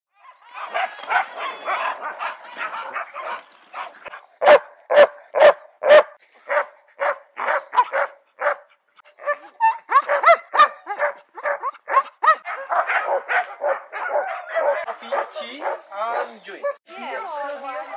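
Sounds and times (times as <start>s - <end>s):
sled dogs barking and yipping: 0.1s - 17.9s.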